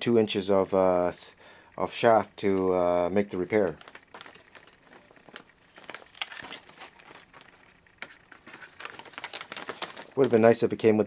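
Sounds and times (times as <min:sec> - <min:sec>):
plastic bag and paper crinkling: 0:03.2 - 0:10.8.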